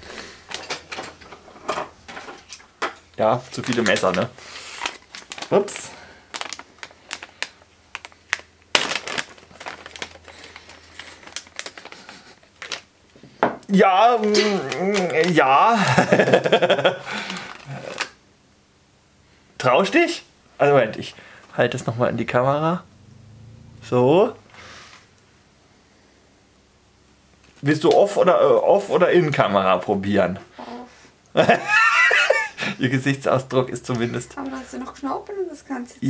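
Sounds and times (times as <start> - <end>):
plastic snack packet crinkling: 3.2 - 12.9, 14.1 - 15.4, 17.1 - 18.2
man laughing heartily: 15.7 - 18.0, 31.3 - 32.8.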